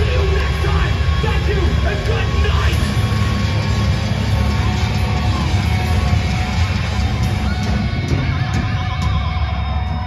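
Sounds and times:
thrash metal band playing live: 0.0 - 10.0.

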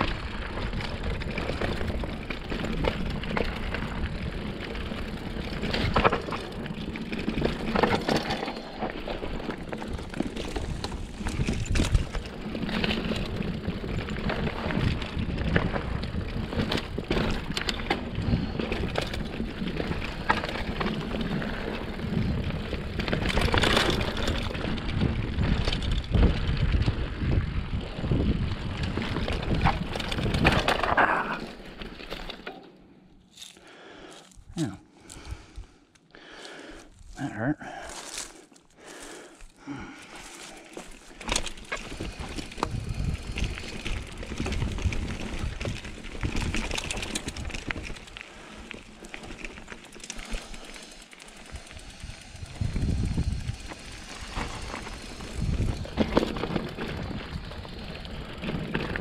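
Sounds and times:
bike rattling: 0.0 - 59.0
bike tyre noise: 0.0 - 59.0
wind rushing on microphone: 24.8 - 30.7, 42.4 - 46.6, 51.6 - 57.8.

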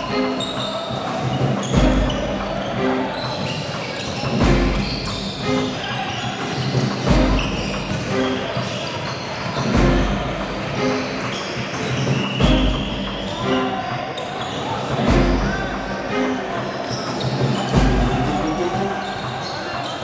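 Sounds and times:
players' voices: 0.0 - 20.0
music with heavy low beat: 1.4 - 2.7, 4.3 - 5.6, 6.8 - 8.2, 9.7 - 10.8, 12.4 - 13.2, 15.0 - 16.1, 17.7 - 19.0.

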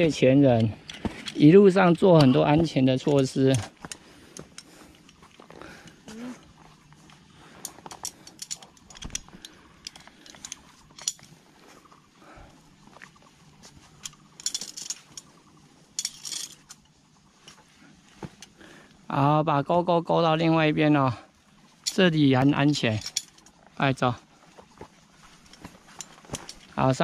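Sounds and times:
metallic clinks of carabiners: 0.0 - 12.0, 13.1 - 17.6, 21.6 - 24.0, 25.1 - 27.0.

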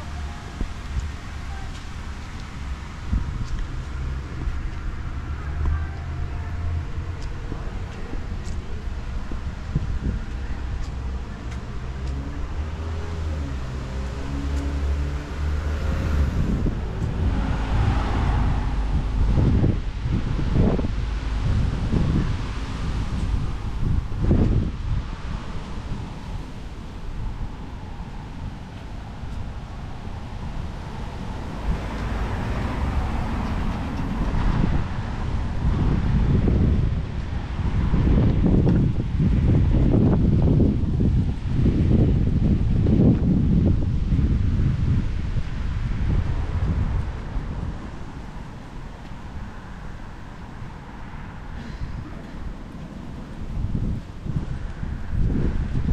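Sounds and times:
light street traffic: 0.0 - 55.9
wind buffeting microphone: 0.0 - 55.9.

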